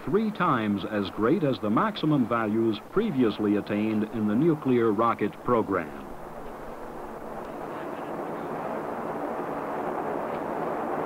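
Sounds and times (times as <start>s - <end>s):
distant rocket exhaust roar: 0.0s - 11.0s.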